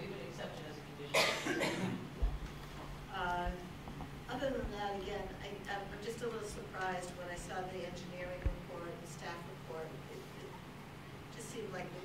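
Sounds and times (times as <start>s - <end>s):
person coughing: 1.1s - 2.1s.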